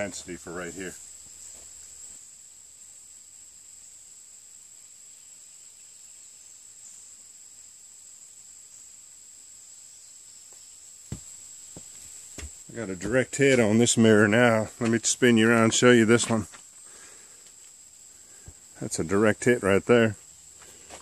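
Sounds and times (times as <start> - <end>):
high-pitched insect chorus: 0.0 - 21.0.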